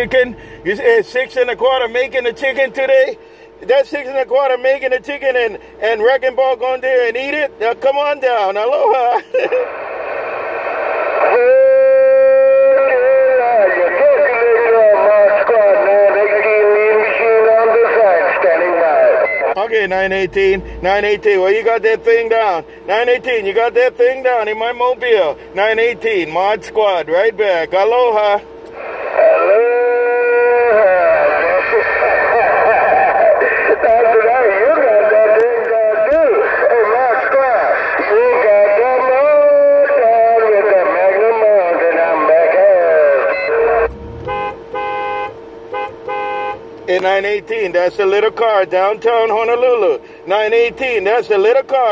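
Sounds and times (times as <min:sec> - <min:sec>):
radio hiss: 0:09.1 - 0:11.6, 0:12.8 - 0:21.1, 0:28.7 - 0:29.9, 0:30.6 - 0:39.3, 0:39.9 - 0:44.1
steady held tone: 0:19.1 - 0:22.8, 0:43.1 - 0:46.7
voice wavering in pitch: 0:19.6 - 0:21.2, 0:43.1 - 0:44.3.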